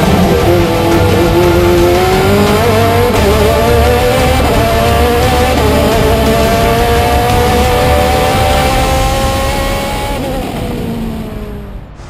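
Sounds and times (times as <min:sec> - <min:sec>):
race car engine revving: 0:00.0 - 0:12.0.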